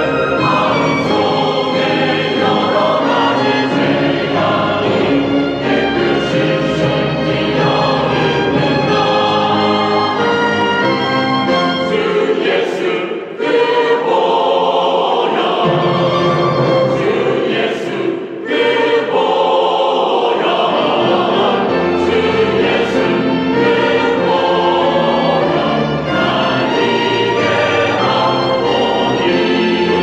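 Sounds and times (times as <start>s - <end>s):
church choir singing a hymn: 0.0s - 30.0s
string ensemble: 0.0s - 30.0s.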